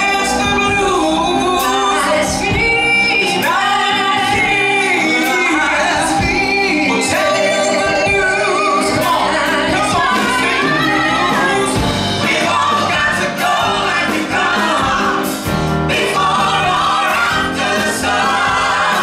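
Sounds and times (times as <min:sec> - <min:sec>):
backing singers: 0:00.0 - 0:19.0
bass guitar: 0:00.0 - 0:19.0
drums and cymbals: 0:00.0 - 0:19.0
piano: 0:00.0 - 0:19.0.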